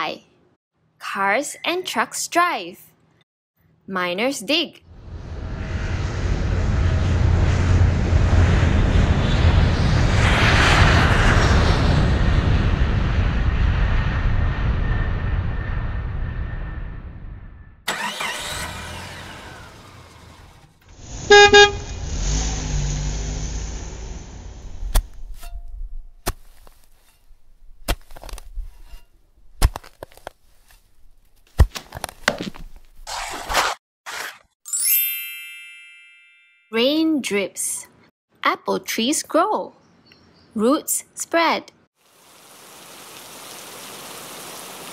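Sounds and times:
vehicle whooshing by: 4.9s - 12.9s, 21.0s - 25.2s
airplane flying past: 4.9s - 17.6s
engine running: 17.9s - 25.2s
horn honking: 21.1s - 22.2s.

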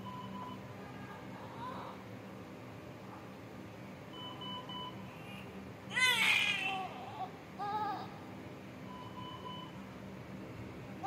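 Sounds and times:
newborn crying: 5.9s - 8.1s.

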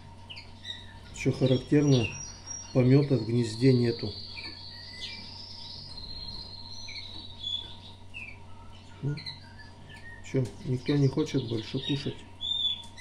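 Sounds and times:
songbirds chirping: 0.0s - 13.0s.

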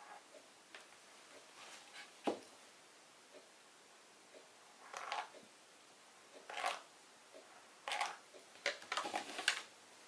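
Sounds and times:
canvas rustling and scraping on table: 1.6s - 2.4s, 8.9s - 9.7s.

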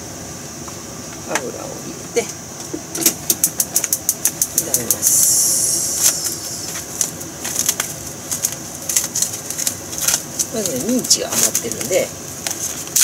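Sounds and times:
sizzling hiss: 3.4s - 8.2s
oil crackling and popping: 6.0s - 13.0s.

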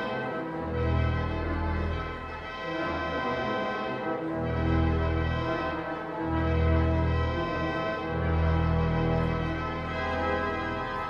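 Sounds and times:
pipe organ chords: 0.0s - 11.0s.

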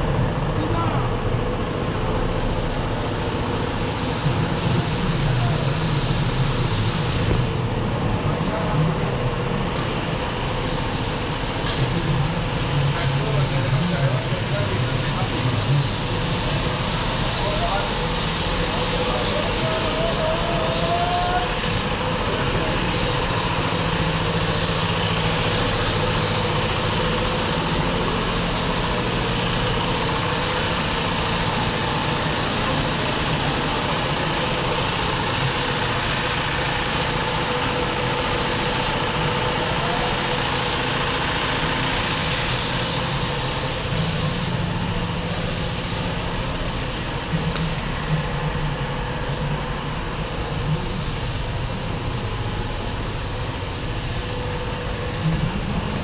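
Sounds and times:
bus engine idling: 0.0s - 56.0s
faint voices: 0.0s - 56.0s.

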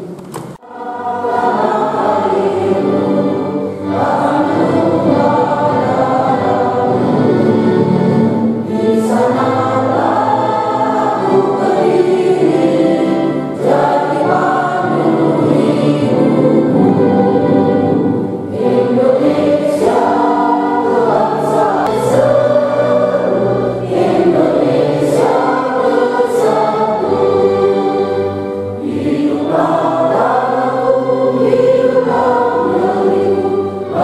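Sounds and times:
choir singing: 0.0s - 34.0s.

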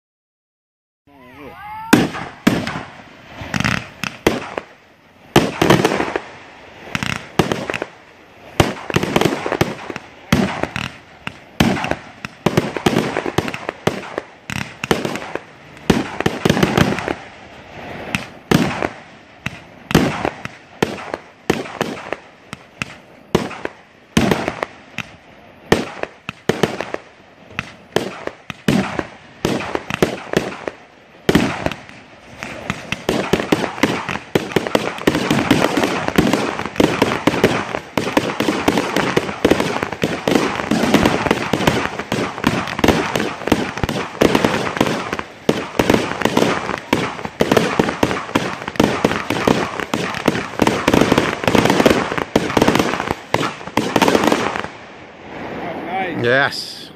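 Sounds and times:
fireworks banging: 1.3s - 56.9s.

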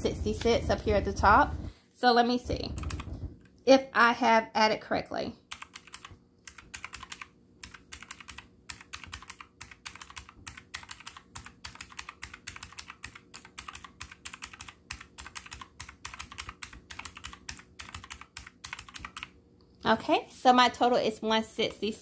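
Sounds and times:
calculator keys clicking: 2.8s - 3.1s, 5.5s - 19.3s.

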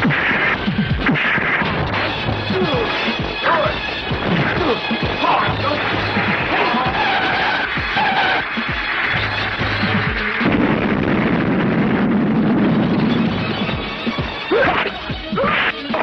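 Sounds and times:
dramatic film score: 0.0s - 16.0s.

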